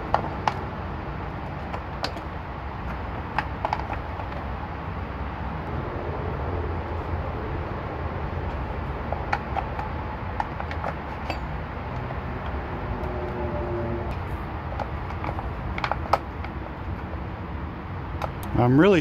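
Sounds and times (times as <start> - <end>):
low background rumble: 0.0 - 18.8.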